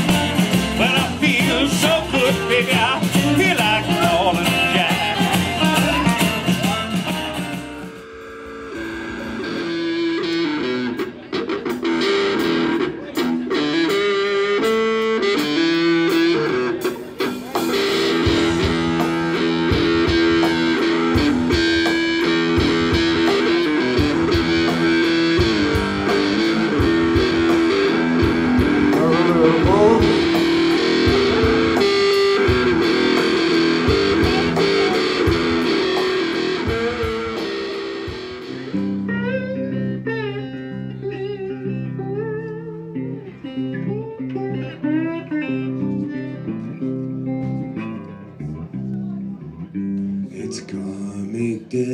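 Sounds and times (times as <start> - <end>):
drums steady beat: 0.0 - 40.4
electric guitar blues lead: 0.0 - 51.9.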